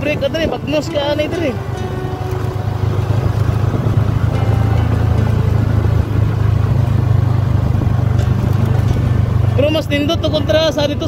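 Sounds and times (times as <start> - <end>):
vehicle engine droning: 0.0 - 11.0.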